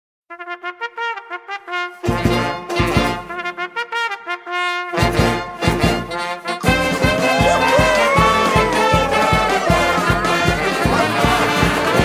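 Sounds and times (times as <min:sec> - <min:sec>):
brass intro music: 0:00.3 - 0:12.0.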